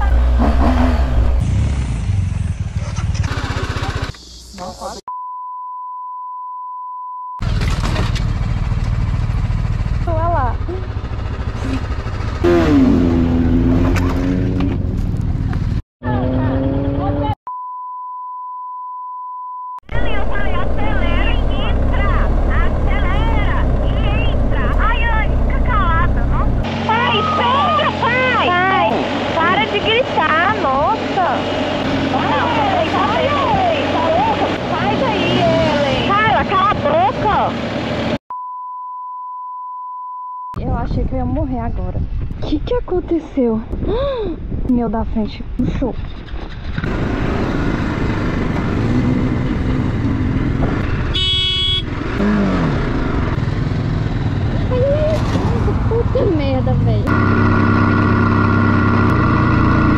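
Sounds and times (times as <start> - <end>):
motorcycle engine: 0.0 - 4.5, 7.4 - 17.4, 19.8 - 38.2, 46.0 - 59.9
voices: 3.4 - 5.1, 16.0 - 17.4, 19.9 - 37.6, 54.6 - 57.1
high beep tone: 5.1 - 7.4, 17.5 - 19.8, 38.3 - 40.6
wind rumble: 40.6 - 51.2.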